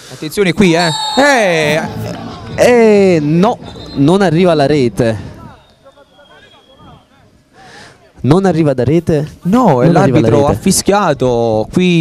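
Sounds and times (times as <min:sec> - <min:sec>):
distant players shouting: 0:00.7 - 0:02.5.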